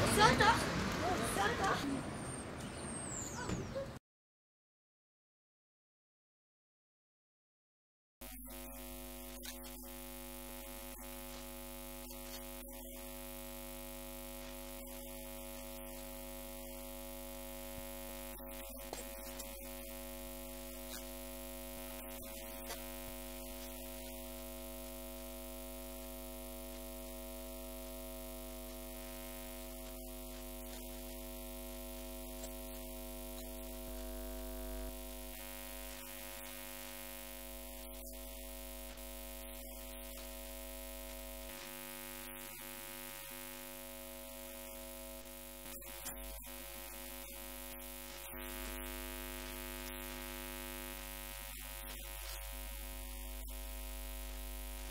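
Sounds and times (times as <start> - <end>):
steady electrical hum: 8.2 - 54.9
constant hiss: 8.6 - 54.9.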